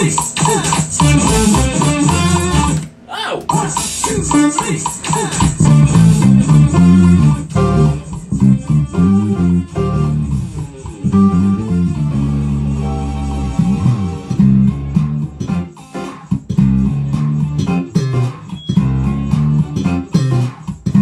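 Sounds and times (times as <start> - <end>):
electric bass guitar line: 0.8 - 2.9, 5.4 - 21.0.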